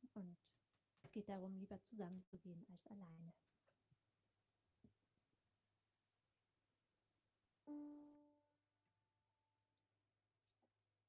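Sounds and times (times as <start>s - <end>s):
piano note ringing: 7.7s - 8.4s.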